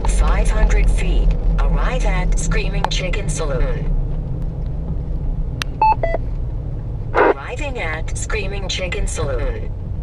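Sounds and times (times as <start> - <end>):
engine and road rumble in car: 0.0 - 10.0.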